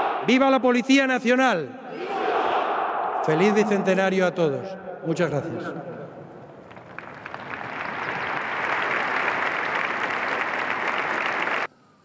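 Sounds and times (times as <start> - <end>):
crowd applauding: 6.4 - 11.7.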